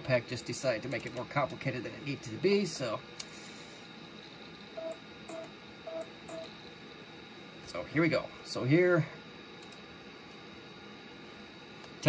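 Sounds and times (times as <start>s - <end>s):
floppy drive buzzing tones: 4.7s - 6.6s
light clicks: 9.6s - 9.8s.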